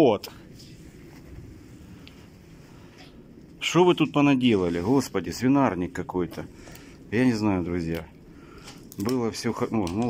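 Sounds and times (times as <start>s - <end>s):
faint low rumble: 0.0s - 10.0s.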